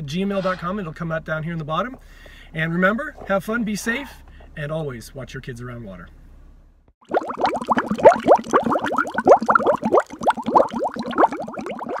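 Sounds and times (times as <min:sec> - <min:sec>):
water bubbling: 0:07.0 - 0:12.0.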